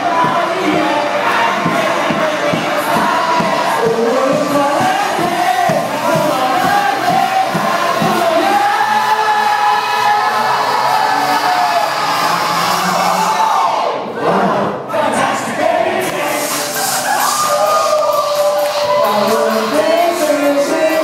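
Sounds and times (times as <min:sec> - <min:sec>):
audience crowd noise: 0:00.0 - 0:21.0
loud pop music with singing: 0:00.0 - 0:21.0.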